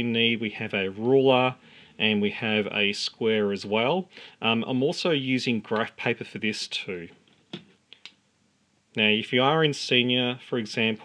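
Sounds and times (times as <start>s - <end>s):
faint ticks of small objects: 7.1s - 8.2s.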